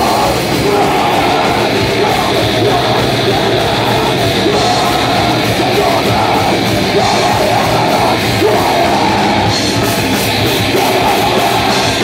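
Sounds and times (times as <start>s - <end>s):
distorted electric guitar: 0.0s - 12.0s
drum kit: 0.0s - 12.0s.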